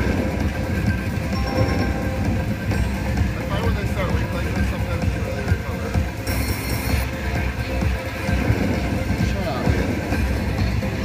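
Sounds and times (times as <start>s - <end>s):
slot machine music and chimes: 0.0s - 7.1s.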